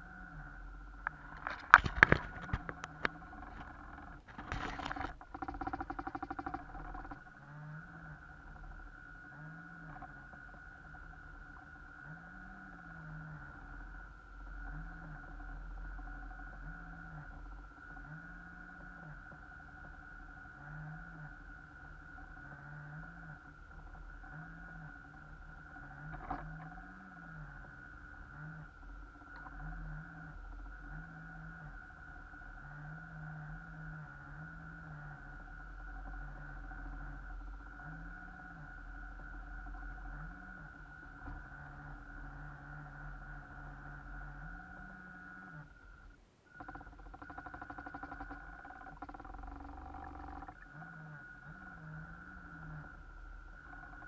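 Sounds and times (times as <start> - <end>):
steady high whine: 0.0 - 54.0.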